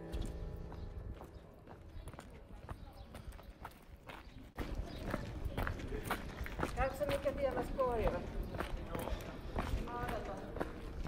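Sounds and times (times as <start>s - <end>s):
footsteps on cobblestones: 0.0s - 11.0s.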